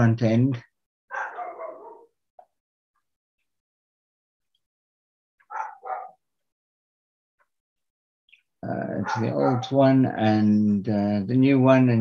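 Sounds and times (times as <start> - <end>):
dog barking: 1.1 - 2.2, 5.4 - 6.2, 8.9 - 9.8.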